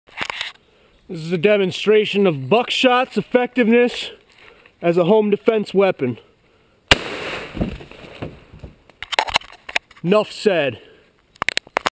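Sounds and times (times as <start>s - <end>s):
shotgun blast with echo: 6.9s - 7.9s.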